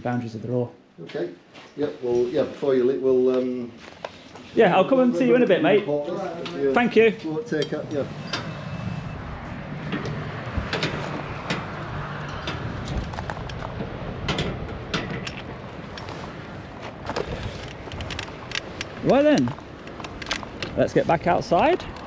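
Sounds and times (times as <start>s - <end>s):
outdoor background noise: 0.0s - 22.0s
bike clicks and rattles: 9.8s - 22.0s.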